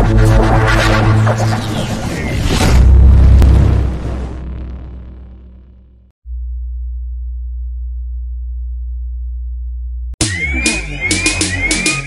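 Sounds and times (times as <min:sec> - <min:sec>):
deep electronic bass tone: 0:00.0 - 0:12.0.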